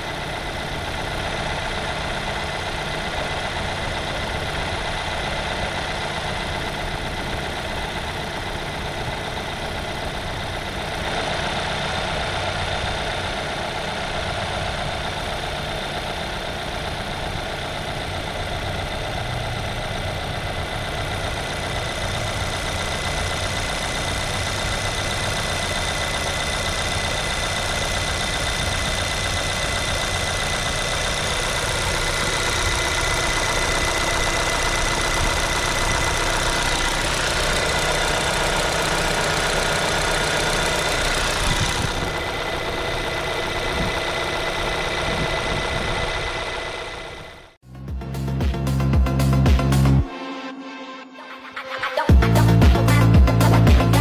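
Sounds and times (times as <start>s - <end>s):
car engine idling: 0.0s - 50.1s, 52.1s - 54.0s.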